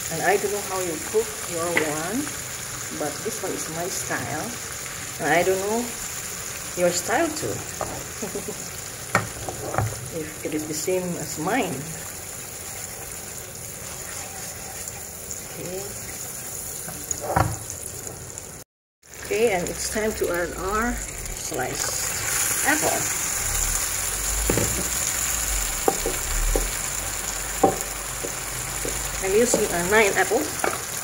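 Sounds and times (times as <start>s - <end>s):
butter sizzling in a frying pan: 0.0s - 31.0s.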